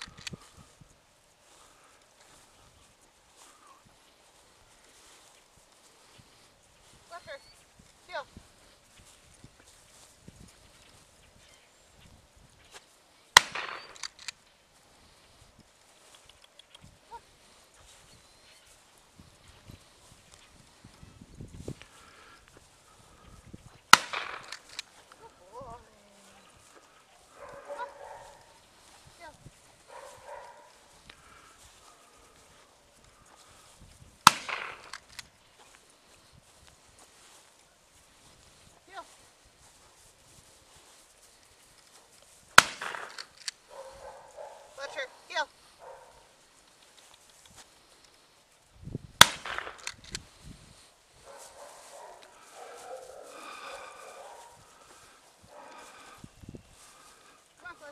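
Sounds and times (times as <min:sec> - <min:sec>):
footsteps in dry grass: 0:00.0 - 0:57.9
gunshots with echo: 0:13.4 - 0:14.0, 0:24.0 - 0:24.6, 0:34.2 - 0:35.0, 0:42.6 - 0:43.2, 0:49.2 - 0:49.9.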